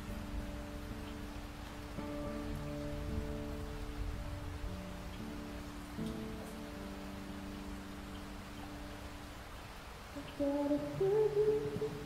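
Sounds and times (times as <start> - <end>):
rain hissing: 0.0 - 12.0.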